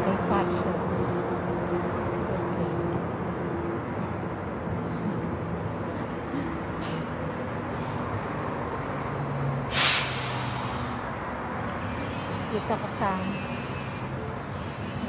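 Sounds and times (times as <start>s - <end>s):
bus engine running: 0.0s - 15.0s
street traffic: 0.0s - 15.0s
air brakes hissing: 9.6s - 11.1s.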